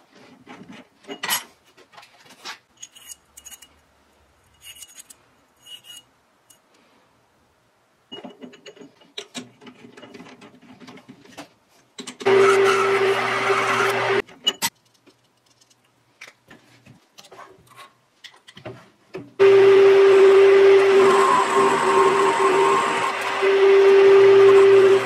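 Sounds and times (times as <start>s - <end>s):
metal lathe running: 12.3s - 14.2s, 19.4s - 25.0s.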